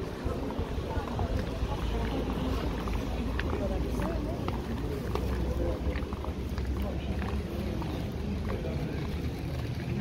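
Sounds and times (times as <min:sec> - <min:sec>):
passers-by chattering faintly: 0:00.0 - 0:10.0.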